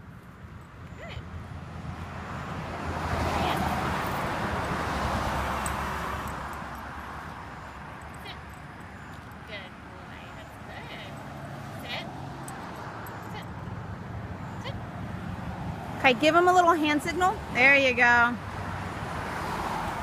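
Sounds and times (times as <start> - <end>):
car passing: 0.0 - 20.0.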